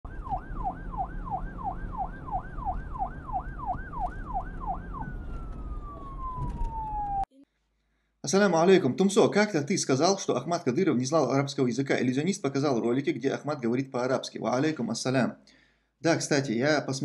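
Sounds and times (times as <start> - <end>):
background rumble: 0.1 - 7.3
siren sweeping up and down: 0.1 - 7.3.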